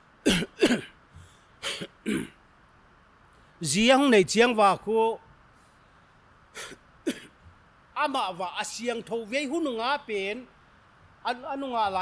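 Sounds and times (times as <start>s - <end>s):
man clearing throat coughing: 0.3s - 1.0s, 1.6s - 2.4s, 6.6s - 7.4s.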